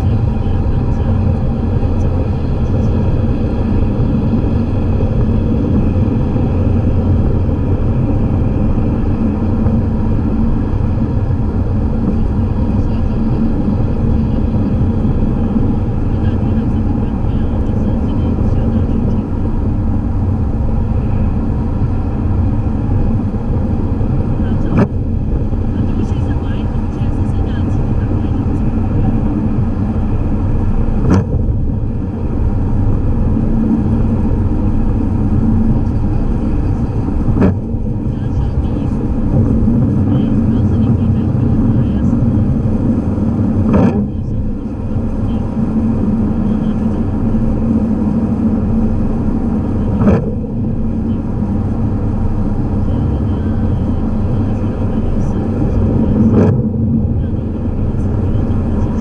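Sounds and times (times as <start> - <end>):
car engine and tyres on wet road: 0.0 - 59.0.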